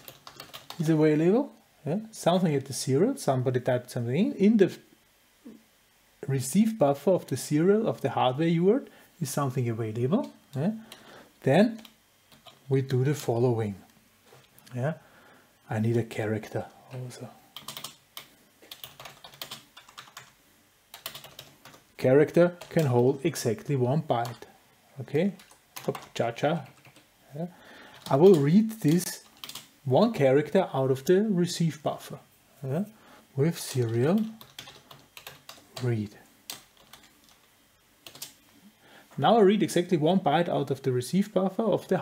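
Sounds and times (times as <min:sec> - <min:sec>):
computer keyboard typing: 0:00.0 - 0:00.9, 0:11.7 - 0:12.6, 0:16.9 - 0:21.8, 0:22.4 - 0:23.0, 0:25.3 - 0:27.1, 0:27.9 - 0:29.7, 0:33.7 - 0:38.4.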